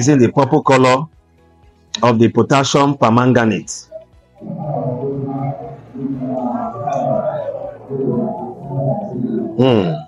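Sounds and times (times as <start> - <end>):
man humming: 4.4 - 10.0.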